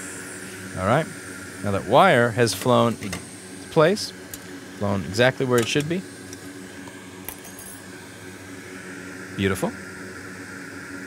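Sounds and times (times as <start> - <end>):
low equipment hum: 0.0 - 11.0.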